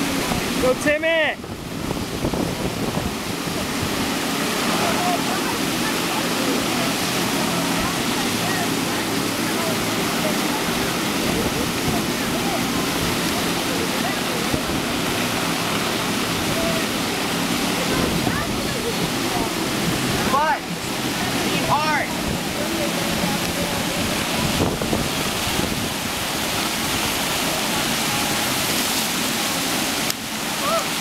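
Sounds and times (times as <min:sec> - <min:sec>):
water rushing up a surf ride: 0:00.0 - 0:31.0.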